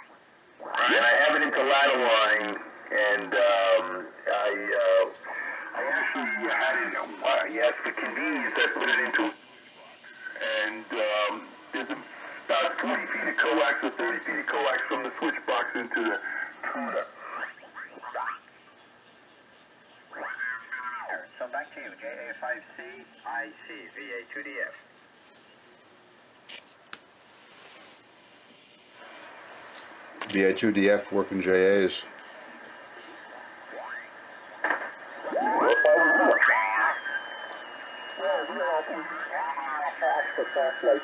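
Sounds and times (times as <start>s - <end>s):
radio band hiss: 0.0s - 41.0s
radio voices sliding in pitch: 0.6s - 25.0s, 32.3s - 41.0s
rising radio whistle: 33.3s - 41.0s
steady heterodyne whistle: 35.2s - 41.0s.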